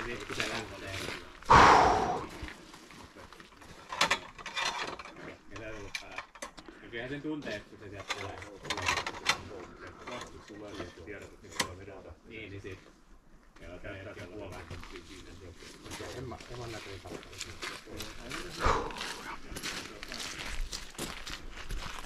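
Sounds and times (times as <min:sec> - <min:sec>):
quiet voices: 0:14.6 - 0:20.3.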